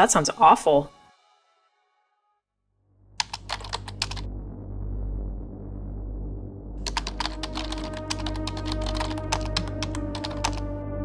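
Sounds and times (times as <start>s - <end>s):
keyboard typing clicks: 3.2s - 4.2s, 6.9s - 10.7s
low ambient music drone: 3.2s - 11.0s.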